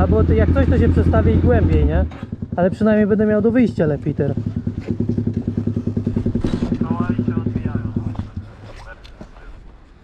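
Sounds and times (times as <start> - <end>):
quad engine idling: 0.0 - 8.8.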